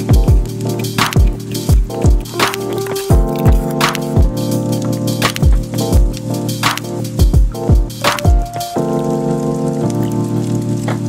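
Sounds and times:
background music sustained chords: 0.0s - 11.0s
broth pouring and splashing: 0.0s - 11.0s.

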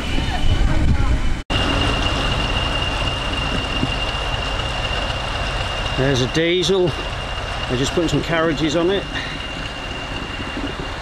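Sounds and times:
diesel locomotive engine rumbling: 0.0s - 11.0s.

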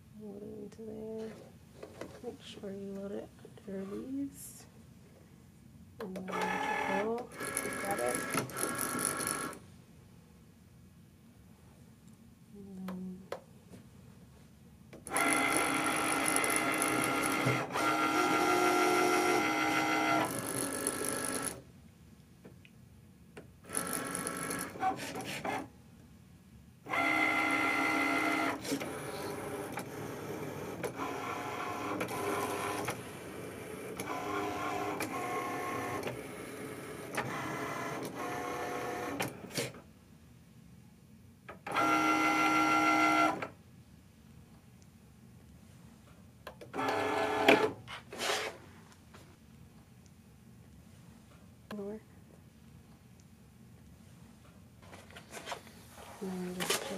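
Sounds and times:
cutting machine motors whirring: 6.1s - 9.6s, 15.1s - 21.6s, 26.9s - 39.8s.

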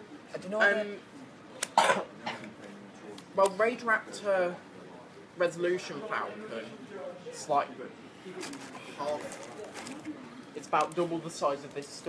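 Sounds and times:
person coughing: 1.8s - 2.4s.

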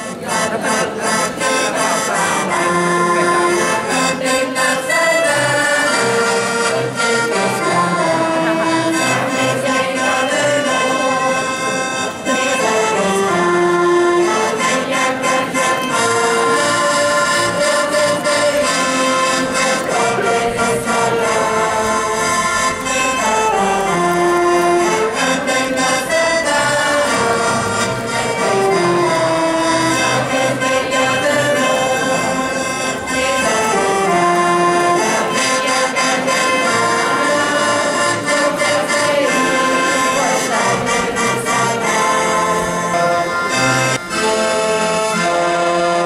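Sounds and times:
accordion: 0.0s - 46.0s
crowd singing along: 0.0s - 46.0s
saxophones playing: 0.0s - 46.0s.

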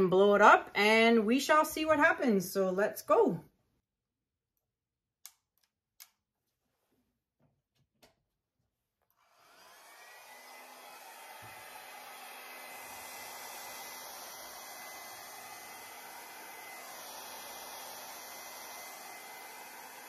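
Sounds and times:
hair dryer running: 9.0s - 20.0s.

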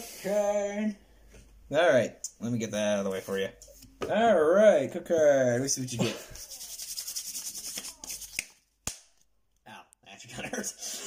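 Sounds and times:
trading cards sliding and rubbing: 6.3s - 8.6s
sharp card snap: 7.6s - 9.2s.

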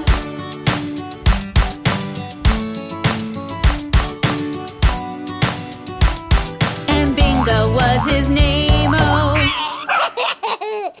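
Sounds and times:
backing music: 0.0s - 9.5s
baby giggling: 8.8s - 11.0s.

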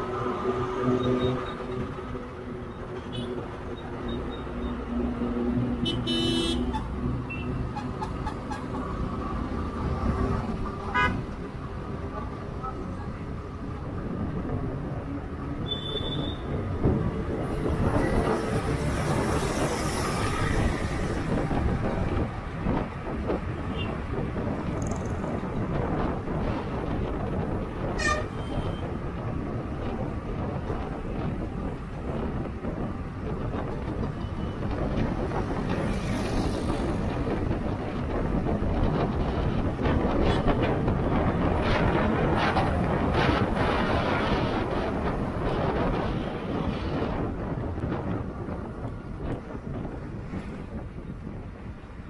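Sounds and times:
engines and tyres hum: 0.0s - 52.0s
wind on microphone: 0.0s - 52.0s.

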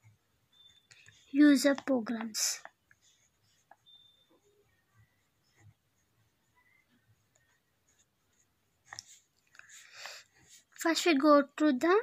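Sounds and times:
pen scratching on paper: 1.0s - 10.8s.

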